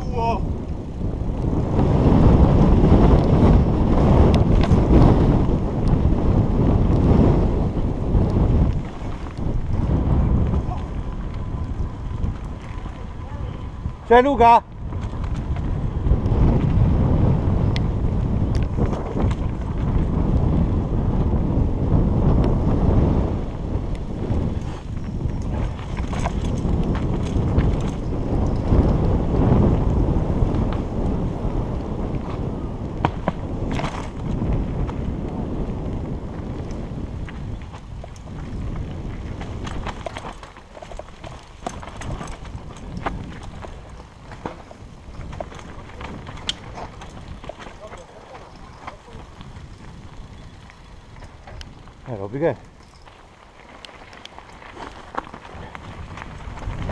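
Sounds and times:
mountain bike rumbling and rattling: 0.0 - 56.9
wind buffeting microphone: 0.0 - 56.9.

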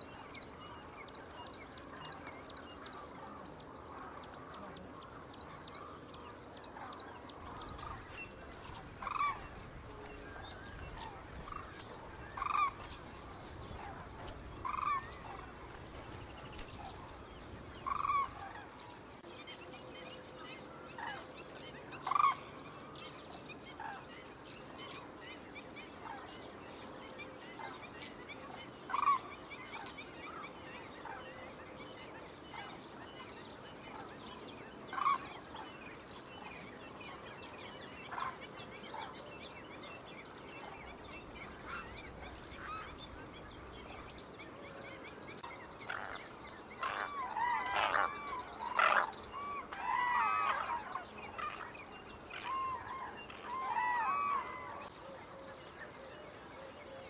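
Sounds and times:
poultry calling: 7.4 - 18.8, 27.5 - 31.5, 45.4 - 55.1.

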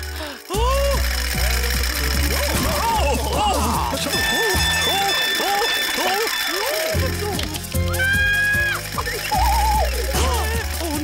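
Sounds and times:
music with swooping glides: 0.0 - 11.0
propeller plane engine buzzing: 0.0 - 11.0.

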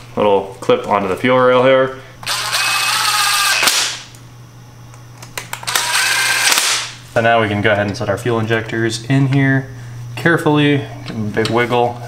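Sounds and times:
impact driver running: 2.2 - 4.1, 5.6 - 7.0.

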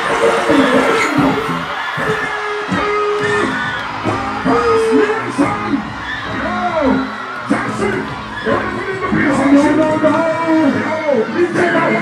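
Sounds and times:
crowd whooping and yelling: 0.0 - 12.0
live dancehall music: 0.0 - 12.0.

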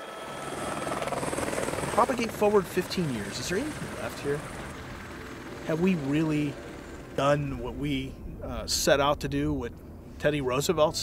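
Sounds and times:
helicopter rotor beating: 0.0 - 8.8.

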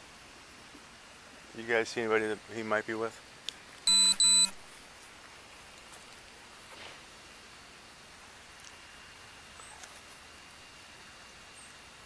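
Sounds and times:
faint outdoor background noise: 0.0 - 12.0
short electronic beeps: 3.9 - 4.6.

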